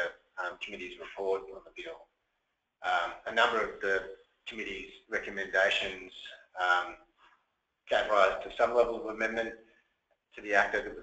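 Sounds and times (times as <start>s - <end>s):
person speaking: 0.0s - 2.0s, 2.8s - 7.0s, 7.9s - 9.5s, 10.4s - 11.0s.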